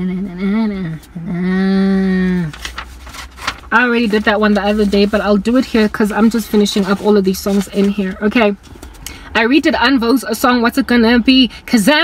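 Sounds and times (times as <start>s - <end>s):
paper rustling: 2.3s - 9.0s.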